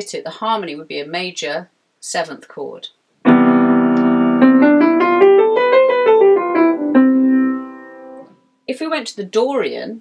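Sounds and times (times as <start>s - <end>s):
piano chord and scale: 3.3s - 8.3s.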